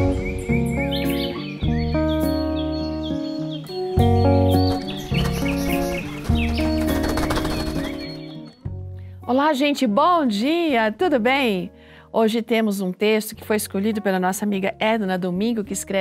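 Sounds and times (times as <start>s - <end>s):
birds chirping: 0.0s - 8.8s.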